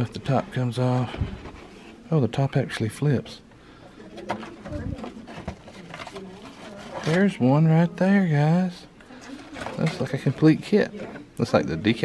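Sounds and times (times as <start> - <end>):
faint voices: 0.0 - 12.0
cardboard box and paper rustling: 4.3 - 7.4.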